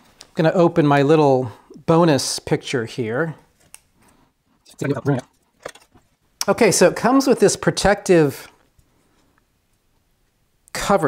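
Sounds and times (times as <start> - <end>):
person muttering: 4.7 - 5.3.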